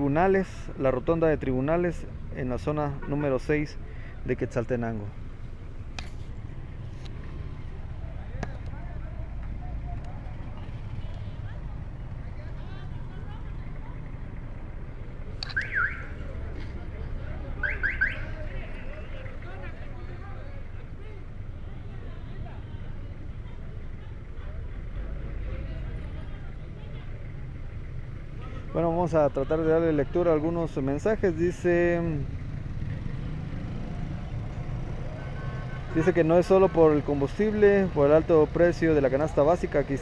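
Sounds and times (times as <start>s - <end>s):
street traffic rumble: 0.0s - 40.0s
vehicle engines idling: 0.0s - 40.0s.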